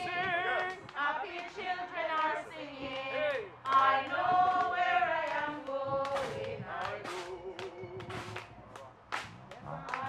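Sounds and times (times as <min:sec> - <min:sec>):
choral singing: 0:00.0 - 0:08.5.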